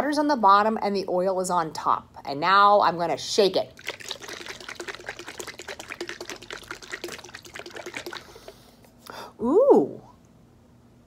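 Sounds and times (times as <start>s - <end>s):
liquid sloshing in shaken bottle: 3.7s - 8.6s.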